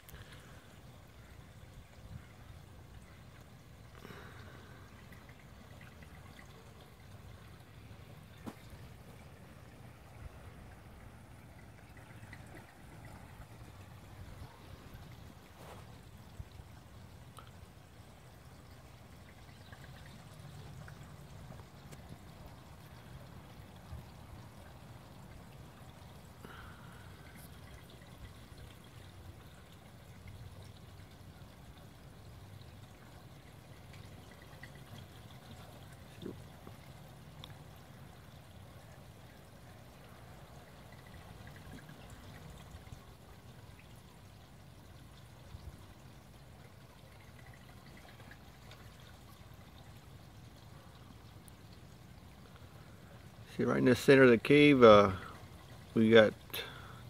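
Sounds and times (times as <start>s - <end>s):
trickle of running water: 0.0s - 57.0s.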